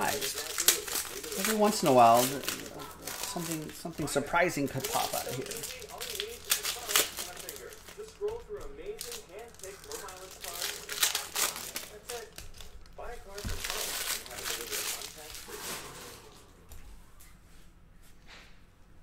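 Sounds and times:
foil wrapper crinkling: 0.0 - 15.8.

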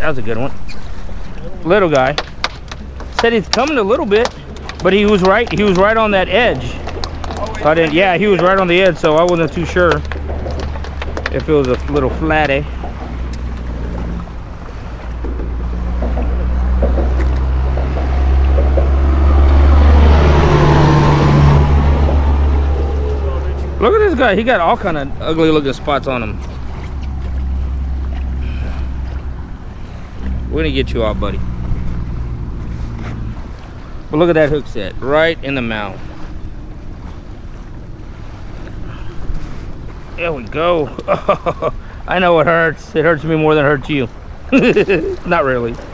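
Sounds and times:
motor low rumble: 0.0 - 45.9.

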